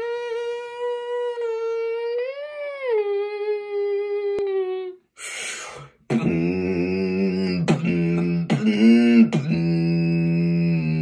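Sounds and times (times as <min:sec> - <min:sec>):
young man humming: 0:00.0 - 0:11.0.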